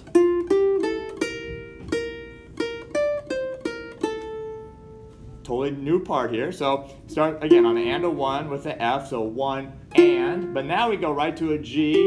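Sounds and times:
ukulele melody: 0.0s - 6.1s, 6.7s - 12.0s.

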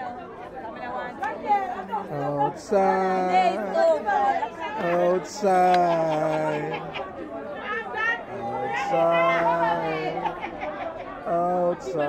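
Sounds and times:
party crowd chatter: 0.0s - 12.0s.

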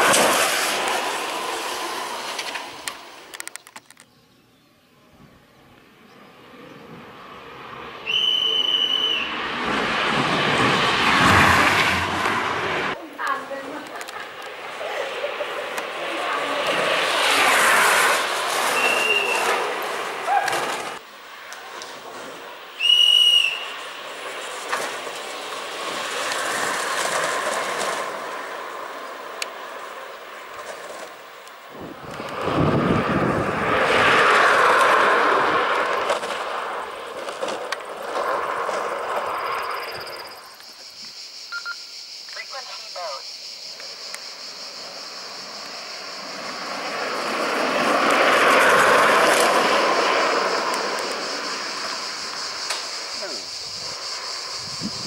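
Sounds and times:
karts rolling on tarmac: 0.0s - 4.5s, 5.2s - 40.8s, 43.8s - 55.0s.

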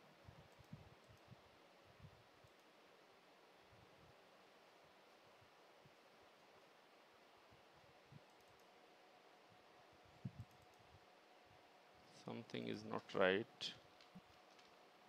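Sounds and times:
faint clicks: 0.4s - 1.3s, 8.2s - 8.8s, 10.3s - 10.9s, 13.9s - 14.9s.

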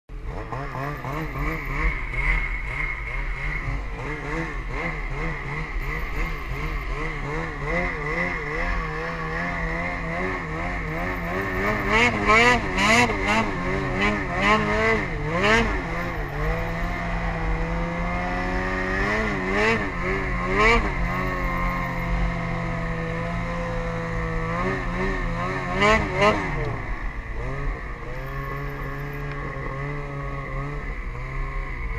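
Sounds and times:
vehicle engine running: 0.1s - 31.9s.

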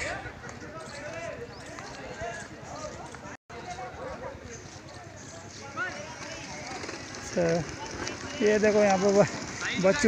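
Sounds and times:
distant people talking: 0.0s - 10.0s.

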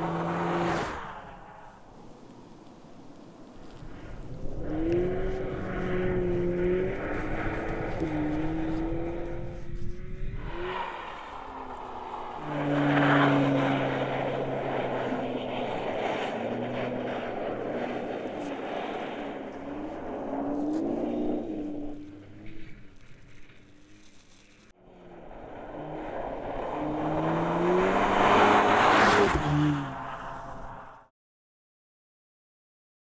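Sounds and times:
car engine revving: 0.0s - 2.8s, 3.6s - 31.0s
tyres rushing on snow: 0.0s - 31.1s.

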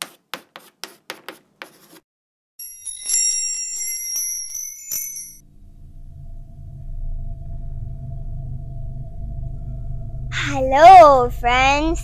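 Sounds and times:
bell-like chimes tinkling: 2.6s - 5.4s.

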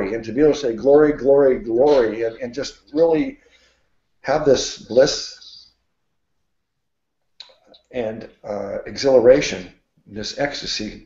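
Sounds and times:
man speaking: 0.0s - 3.4s, 4.2s - 5.8s, 7.8s - 11.0s
mouth click: 7.4s - 7.9s.

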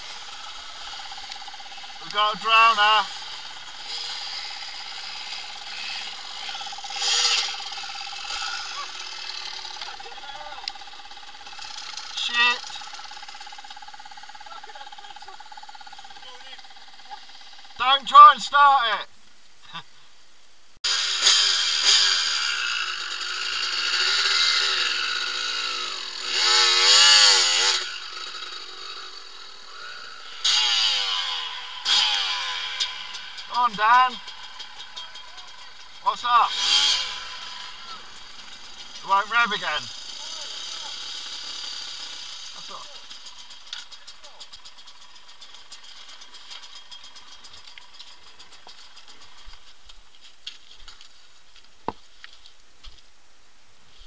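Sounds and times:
motorcycle engine revving: 0.0s - 18.0s, 20.9s - 51.1s.

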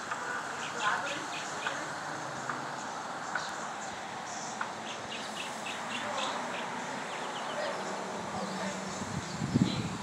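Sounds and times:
outdoor hiss: 0.0s - 10.0s
small birds chirping: 0.0s - 10.0s.

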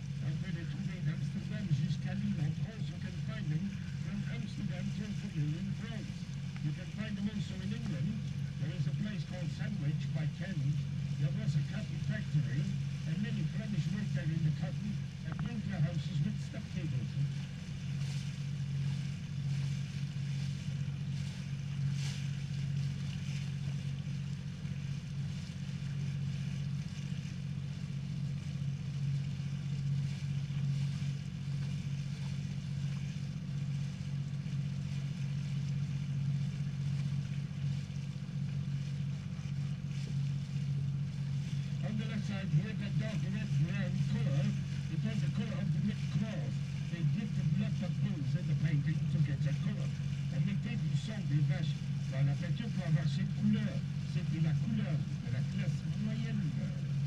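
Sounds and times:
boat engine droning: 0.0s - 57.0s.

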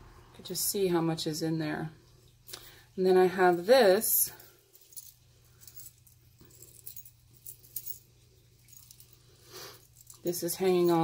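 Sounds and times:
fabric strands rustling: 3.4s - 11.0s
metal charms clinking: 3.4s - 11.0s.

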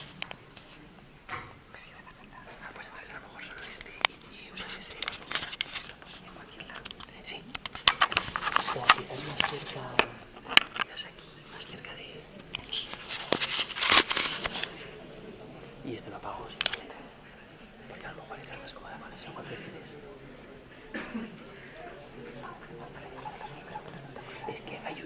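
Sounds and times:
clip-on microphone rustling and clicks: 3.6s - 11.0s, 12.4s - 14.8s.

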